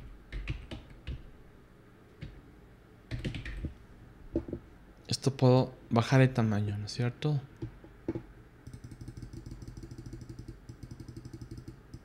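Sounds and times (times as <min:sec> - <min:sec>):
rapid mouse button clicking: 0:08.7 - 0:12.0.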